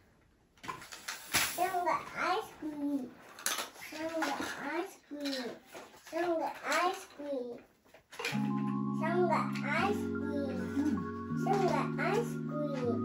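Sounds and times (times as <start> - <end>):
simple electronic tune: 8.3 - 13.0.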